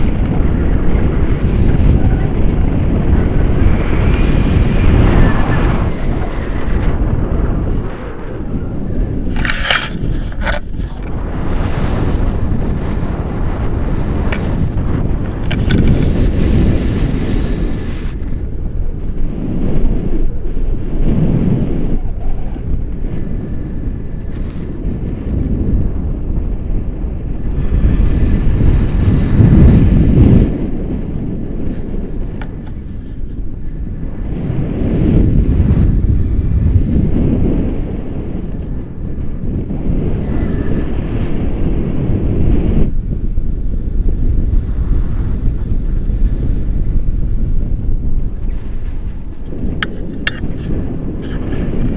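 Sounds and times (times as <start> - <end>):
wind rushing over microphone: 0.0 - 51.9.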